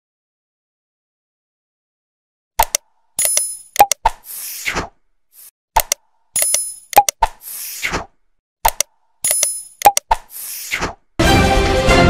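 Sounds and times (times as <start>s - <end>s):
sharp clicks: 2.6s - 4.2s, 5.8s - 7.4s, 8.6s - 10.4s.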